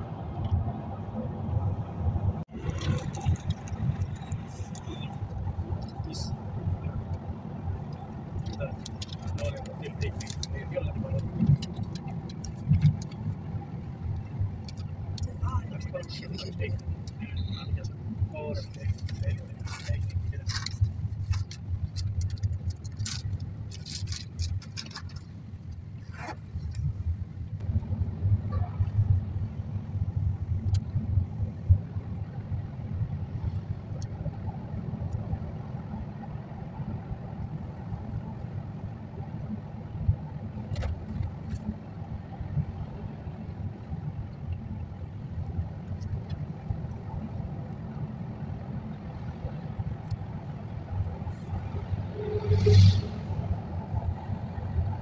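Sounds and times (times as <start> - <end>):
vehicle engine and tyre rumble: 0.0 - 55.0
small clicks and rattles: 2.5 - 6.2, 7.9 - 17.8, 18.5 - 27.0.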